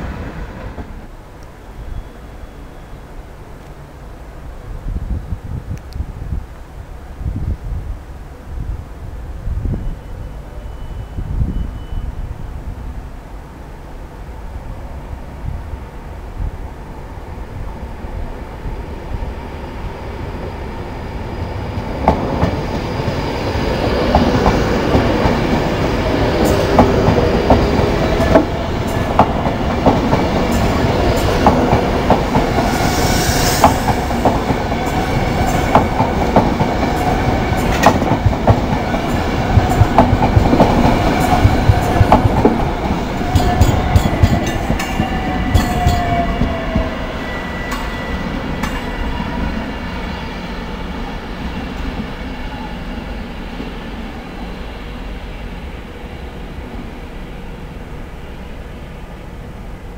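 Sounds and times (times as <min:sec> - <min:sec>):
train rumbling past: 0:00.0 - 0:59.9
train whine falling in pitch: 0:24.0 - 0:55.5.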